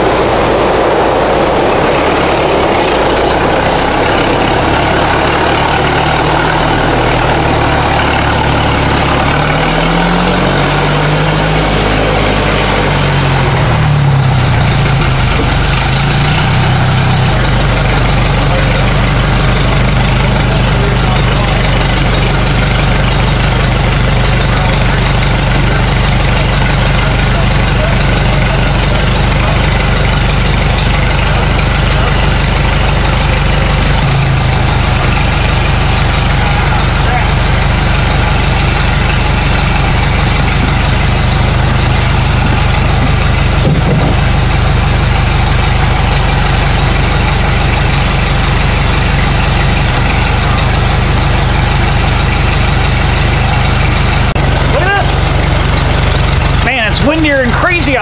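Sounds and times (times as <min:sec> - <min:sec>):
tractor engine idling: 0:00.0 - 0:58.0
wind noise: 0:42.2 - 0:44.3.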